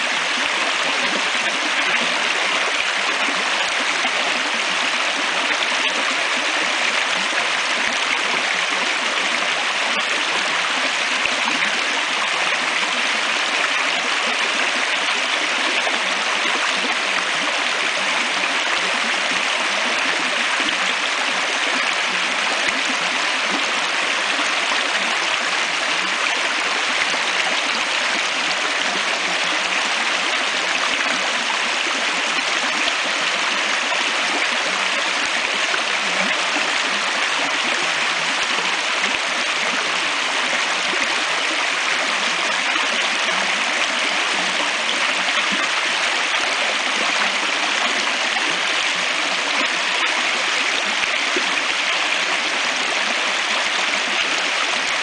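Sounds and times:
stream burbling over stones: 0.0s - 55.0s.

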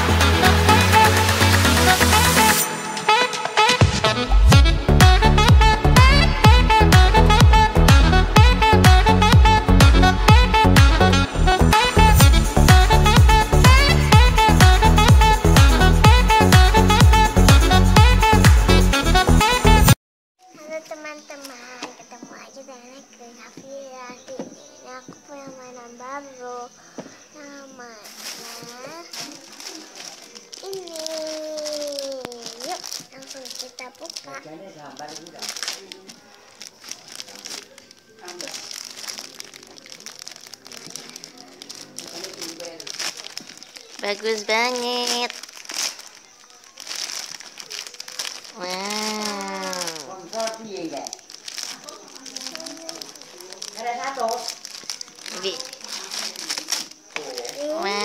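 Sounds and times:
child making wordless vocal sounds: 27.4s - 29.3s, 30.6s - 34.4s, 57.3s - 58.0s
plastic wrapping crinkling: 27.4s - 58.0s.

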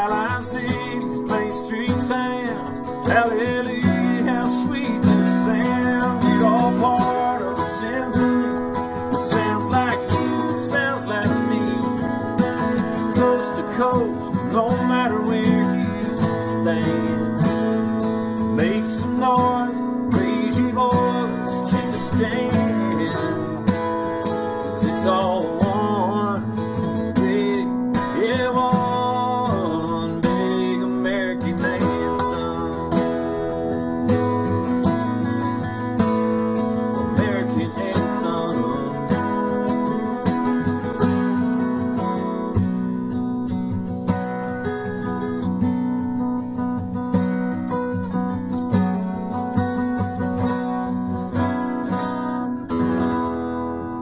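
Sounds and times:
acoustic guitars playing country: 0.0s - 54.0s.

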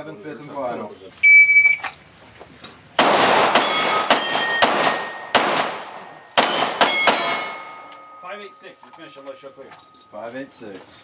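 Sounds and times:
pistol shots: 3.0s - 7.9s
steel plates ringing: 3.6s - 5.4s, 6.1s - 10.5s.

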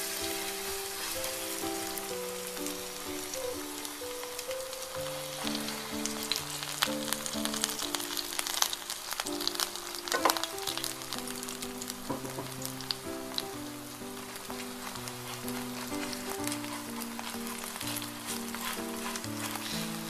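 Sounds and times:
background music: 0.0s - 20.0s
batter sizzling in oil: 0.0s - 20.0s.

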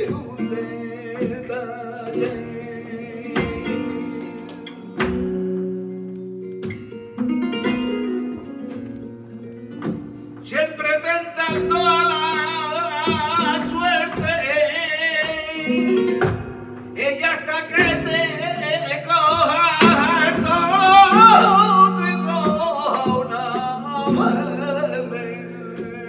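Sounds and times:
man singing with vibrato: 0.0s - 5.0s, 10.4s - 26.0s
flamenco guitar plucked: 0.0s - 26.0s.

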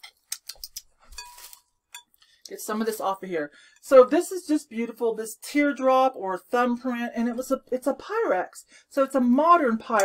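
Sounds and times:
plastic bag crinkling: 1.1s - 1.7s.

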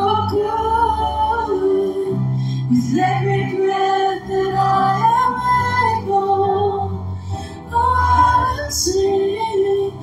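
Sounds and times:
church band keyboard and bass: 0.0s - 10.0s
women singing worship song: 0.0s - 10.0s.

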